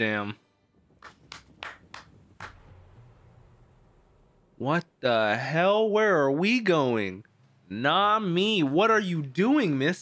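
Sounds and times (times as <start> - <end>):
person clapping hands: 1.0 - 2.6.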